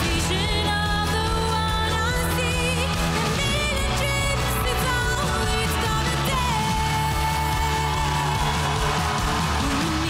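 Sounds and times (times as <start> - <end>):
live pop ballad band: 0.0 - 10.0.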